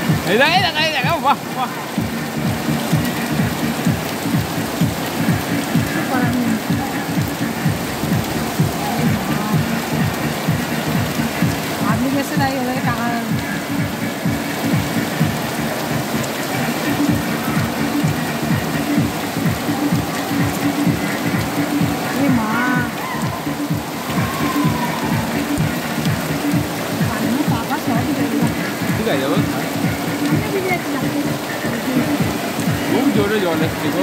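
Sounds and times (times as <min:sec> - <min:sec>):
heavy rain on a tent: 0:00.0 - 0:34.0.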